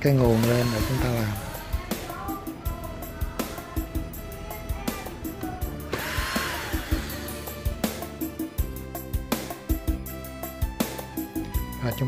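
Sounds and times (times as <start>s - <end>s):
cordless drill motor whine: 0.0s - 2.6s, 5.1s - 8.4s
background music with steady beat: 0.0s - 12.0s.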